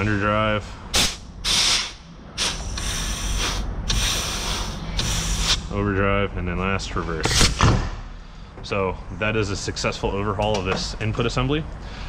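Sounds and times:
compressed air blow gun hissing: 1.0s - 5.7s.

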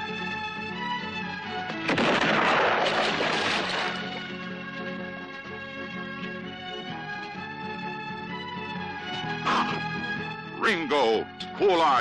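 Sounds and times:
film score music: 0.0s - 12.0s
loud bang with rushing decay: 1.9s - 4.1s.

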